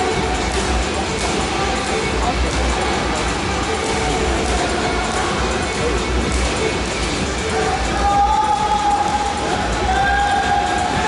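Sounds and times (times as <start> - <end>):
spectators cheering: 7.6 - 11.0.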